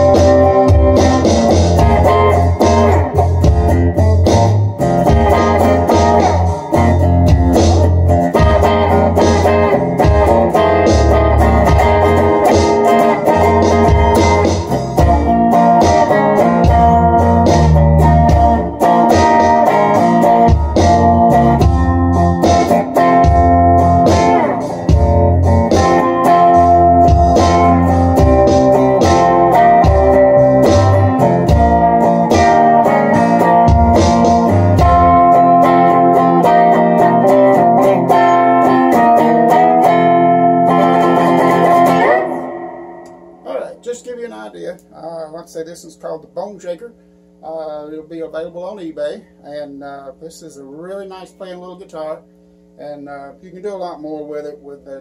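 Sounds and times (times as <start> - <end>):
cigar box guitar through amp: 0.0 - 55.0.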